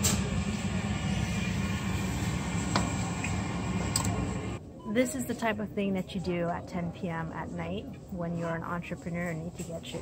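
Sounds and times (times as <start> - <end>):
mechanical hum with low drone: 0.0 - 10.0.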